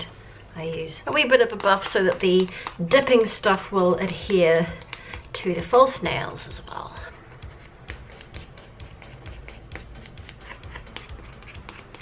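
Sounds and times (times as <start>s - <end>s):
nail buffer scratching nails: 0.7s - 5.8s, 7.0s - 12.0s.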